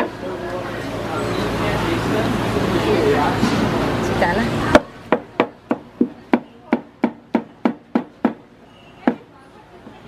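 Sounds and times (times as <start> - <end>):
loud background noise: 0.0 - 10.0.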